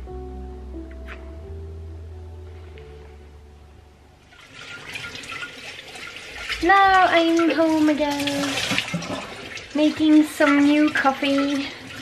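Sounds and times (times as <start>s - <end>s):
background music: 0.0s - 7.8s
water running from kitchen tap: 4.3s - 12.0s.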